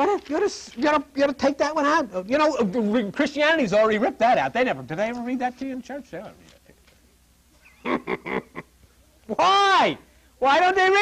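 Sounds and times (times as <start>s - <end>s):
man talking: 0.0s - 7.2s, 9.2s - 11.0s
laughter: 7.6s - 8.7s.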